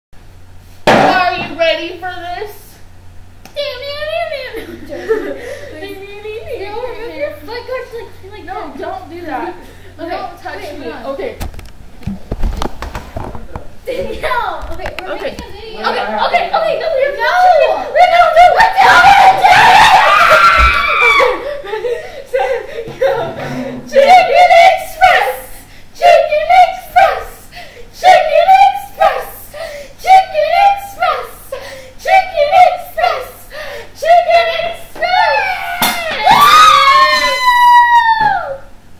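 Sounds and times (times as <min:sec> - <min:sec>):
girls giggling: 0:04.3 - 0:08.6, 0:20.0 - 0:24.1
girls screaming: 0:17.1 - 0:21.6, 0:34.1 - 0:38.7.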